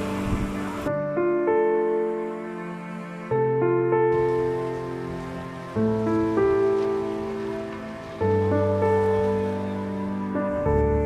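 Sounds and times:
soft keyboard chords: 0:00.0 - 0:11.0.

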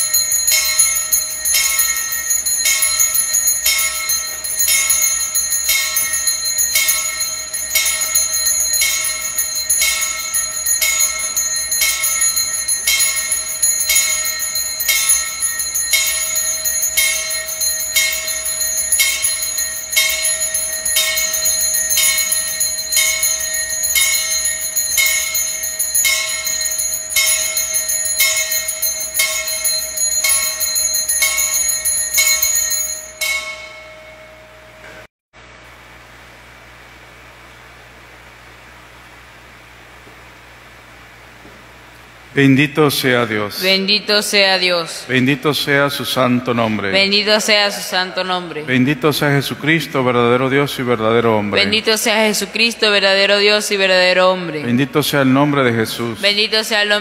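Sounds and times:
small bells shaken rhythmically: 0:00.0 - 0:34.2.

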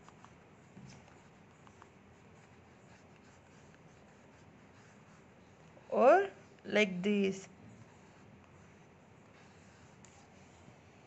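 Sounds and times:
pencil scratching on paper: 0:00.0 - 0:06.4, 0:07.3 - 0:11.0.

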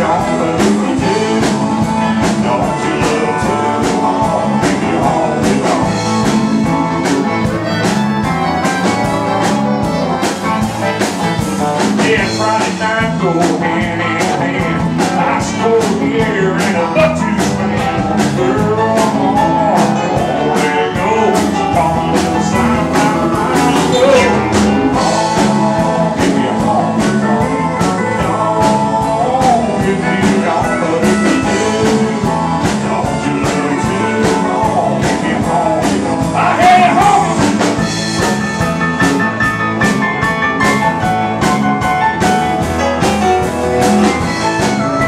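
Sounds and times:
acoustic guitar: 0:00.0 - 0:45.0
honky-tonk country band playing: 0:00.0 - 0:45.0
fiddle: 0:06.1 - 0:11.8.

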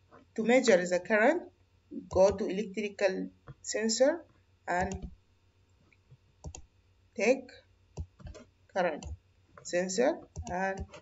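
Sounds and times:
computer mouse clicks: 0:04.8 - 0:05.2, 0:05.9 - 0:06.7, 0:08.0 - 0:09.2, 0:10.3 - 0:11.0.

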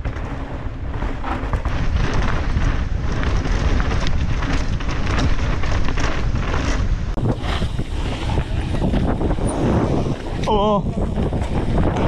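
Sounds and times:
bike rattling over bumps: 0:00.0 - 0:12.0
tyres rumbling on dirt trail: 0:00.0 - 0:12.0
wind blasting microphone: 0:00.0 - 0:12.0.

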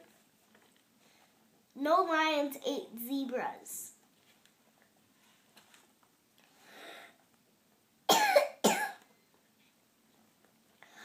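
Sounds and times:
girl coughing: 0:08.1 - 0:09.1.

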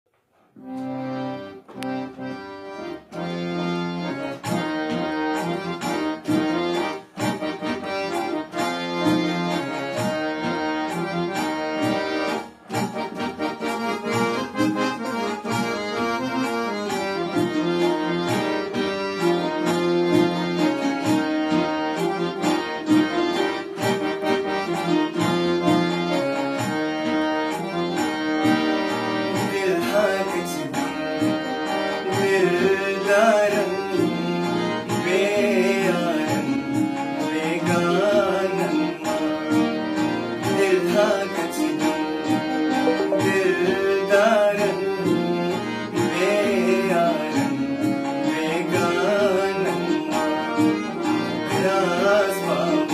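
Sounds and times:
harmonium playing: 0:00.2 - 0:52.9
percussion strokes: 0:04.1 - 0:52.9.

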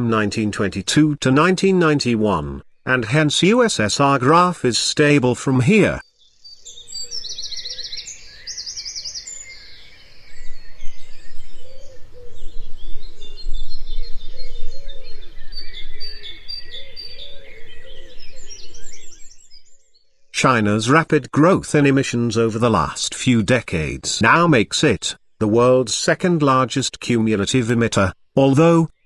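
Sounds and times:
birds chirping and singing: 0:05.7 - 0:20.8
lower arched bird notes: 0:06.4 - 0:19.8.

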